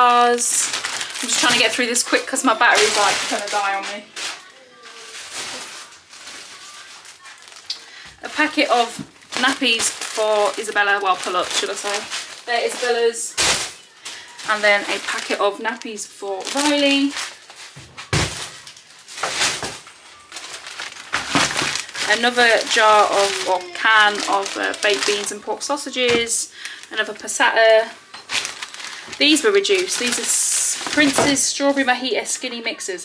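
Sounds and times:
rustling and handling noise: 0.0 - 32.8
faint child's voice: 4.0 - 7.6.

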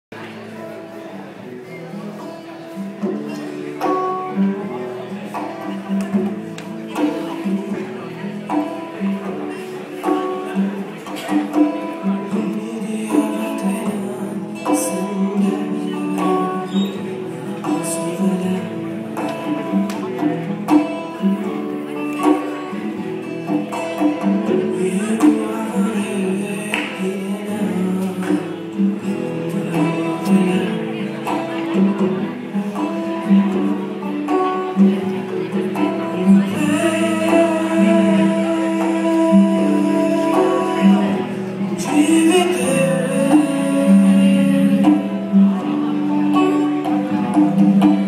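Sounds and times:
acoustic guitars strumming chords: 0.1 - 48.0.

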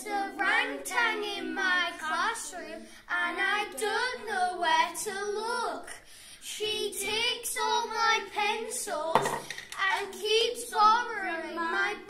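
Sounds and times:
children chanting a poem: 0.0 - 9.2, 9.8 - 12.0.

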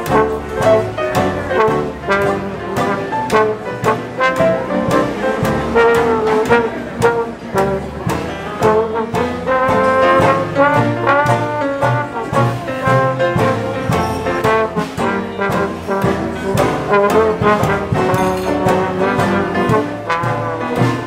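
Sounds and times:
jazz band playing: 0.0 - 21.0.

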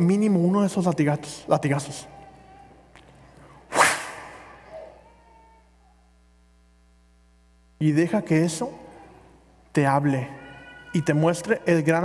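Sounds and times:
sharp whip-like crack echoing: 3.7 - 4.8.

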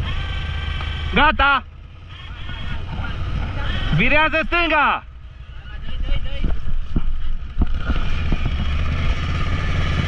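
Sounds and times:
engine running at low revs: 0.0 - 10.0.

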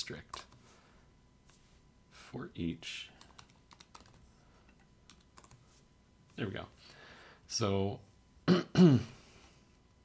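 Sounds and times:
man clearing his throat: 8.5 - 9.2.

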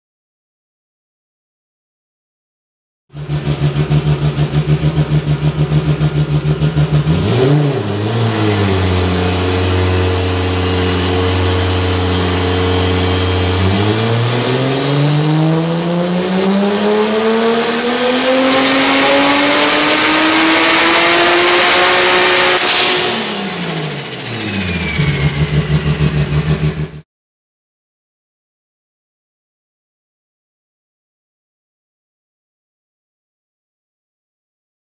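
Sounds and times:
car engine revving on dyno: 3.2 - 27.0
turbo whistle: 17.5 - 18.4, 22.6 - 26.4.

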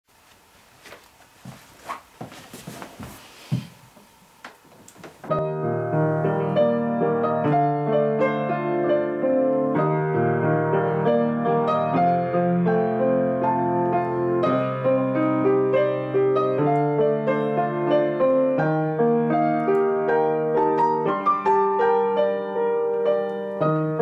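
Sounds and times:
faint knocks and rustles: 0.2 - 5.4
piano playing chords: 5.2 - 24.0.

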